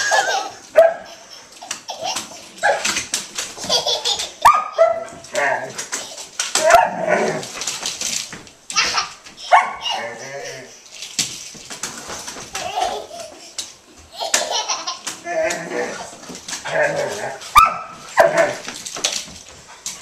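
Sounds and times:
toy stroller rattling on wood floor: 0.0 - 10.2, 10.9 - 20.0
large dog barking: 16.9 - 18.6.

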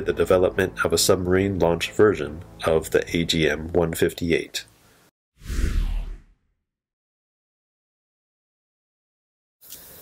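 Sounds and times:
whoosh sound effect: 5.4 - 6.4.

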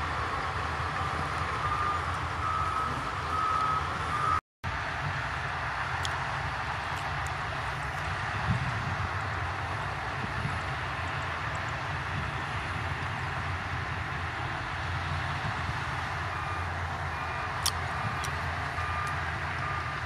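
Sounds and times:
diesel engines running: 0.0 - 20.0
reversing alarm beeping: 0.3 - 4.4, 16.3 - 20.0.

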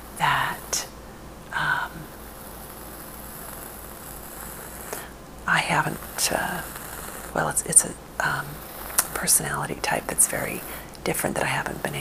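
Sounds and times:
low hum: 0.0 - 12.0
microphone hiss: 0.0 - 12.0.

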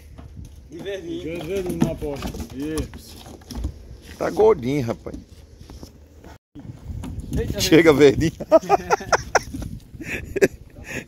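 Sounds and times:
hooves on rubber ramp: 0.0 - 8.5.

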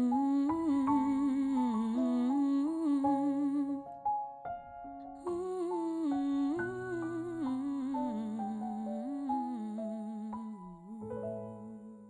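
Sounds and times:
woman humming a melody: 0.0 - 3.8, 5.2 - 12.0
sustained piano chords: 0.0 - 12.0.

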